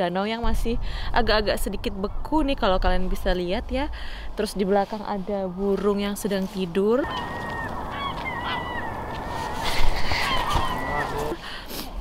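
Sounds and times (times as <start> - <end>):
steady rushing background: 0.4 - 7.0
waterbirds calling: 4.1 - 11.6.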